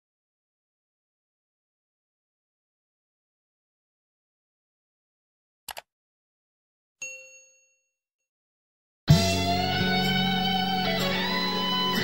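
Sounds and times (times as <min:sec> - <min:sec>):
notification bell ding: 0:07.0 - 0:07.8.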